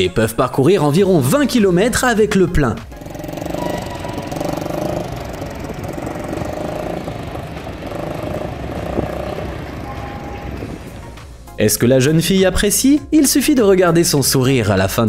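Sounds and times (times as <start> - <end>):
small motorcycle engine running: 2.8 - 11.2.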